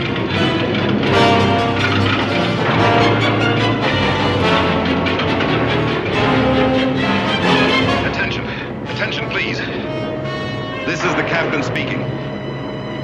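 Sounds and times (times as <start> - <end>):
dramatic orchestral score: 0.0 - 13.0.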